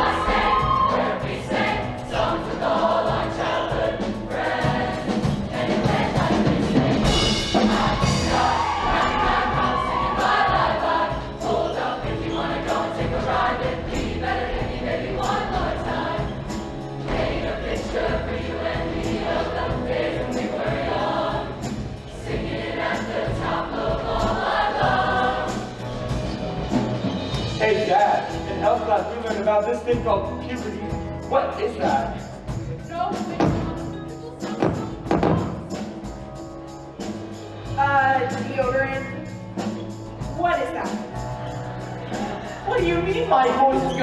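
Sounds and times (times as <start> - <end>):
choir singing: 0.0 - 29.7, 40.8 - 44.0
steady drum beat: 0.0 - 43.9.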